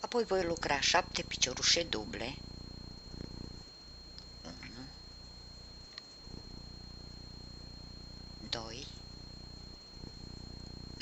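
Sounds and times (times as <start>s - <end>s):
low pulsing hum: 0.0s - 11.0s.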